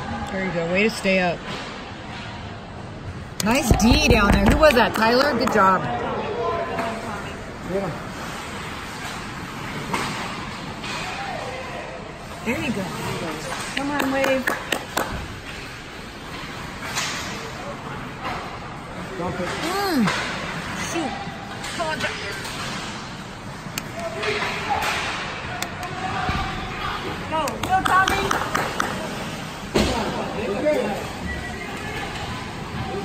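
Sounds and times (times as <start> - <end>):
hockey sticks and puck clacking: 3.4 - 5.7, 8.3 - 11.3, 13.4 - 17.6, 21.4 - 30.2.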